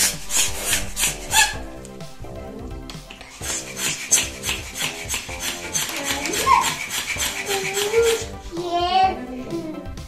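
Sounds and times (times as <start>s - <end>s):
balloon pump air strokes: 0.0s - 1.7s, 3.0s - 8.6s
background music: 0.0s - 10.0s.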